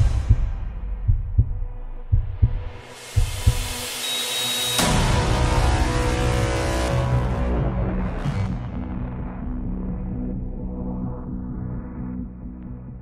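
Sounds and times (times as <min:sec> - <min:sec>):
heartbeat thumps: 0:00.0 - 0:03.8.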